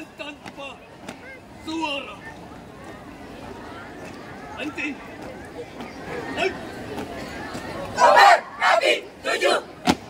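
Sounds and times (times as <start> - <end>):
crowd murmur: 0.0 - 10.0
people shouting chant lines: 8.0 - 9.8.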